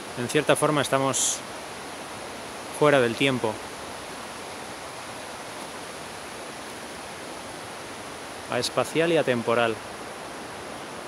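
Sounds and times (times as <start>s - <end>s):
stream water rushing: 0.0s - 11.0s.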